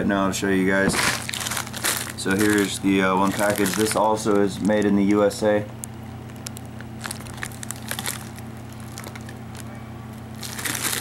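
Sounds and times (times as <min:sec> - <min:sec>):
low steady hum: 0:00.0 - 0:11.0
plastic envelope crinkling: 0:00.7 - 0:11.0.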